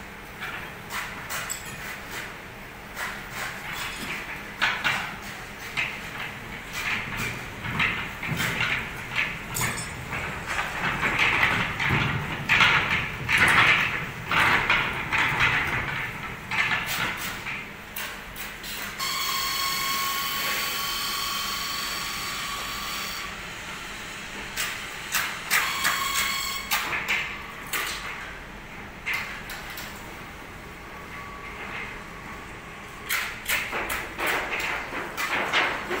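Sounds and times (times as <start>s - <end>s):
metal clanks and scrapes: 0.4s - 19.0s.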